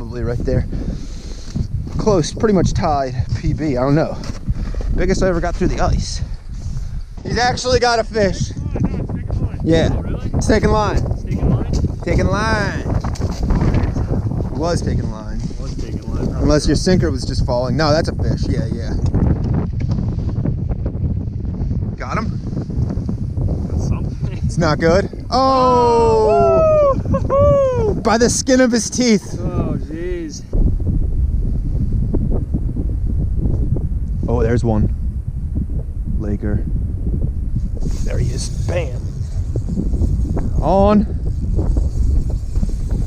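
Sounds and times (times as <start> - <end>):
strong wind buffeting microphone: 0.0 - 43.0
fishing reel drag clicking: 37.9 - 43.0.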